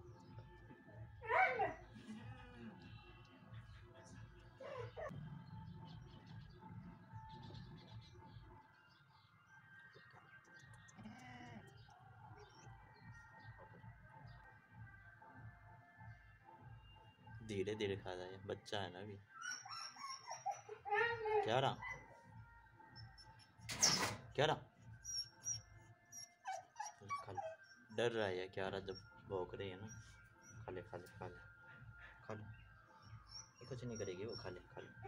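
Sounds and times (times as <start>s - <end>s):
dog whimpering: 4.6s - 5.1s, 19.3s - 22.2s, 25.0s - 27.9s.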